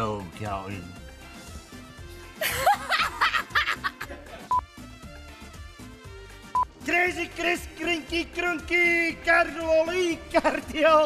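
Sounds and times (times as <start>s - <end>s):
background music: 0.0s - 11.0s
woman laughing: 2.4s - 4.5s.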